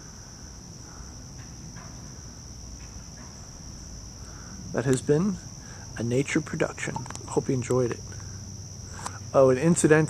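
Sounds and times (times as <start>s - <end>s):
insects trilling: 0.0s - 10.0s.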